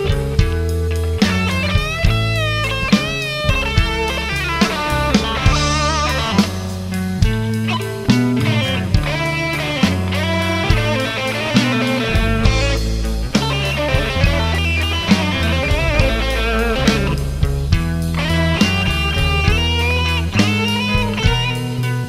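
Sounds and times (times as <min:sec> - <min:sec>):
bass guitar: 0:00.0 - 0:22.0
drum kit slow beat: 0:00.0 - 0:22.0
electric guitar bending notes: 0:00.0 - 0:22.0.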